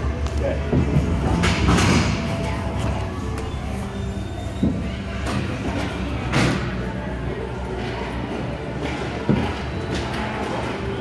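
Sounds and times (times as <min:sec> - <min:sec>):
low hum of hall: 0:00.0 - 0:11.0.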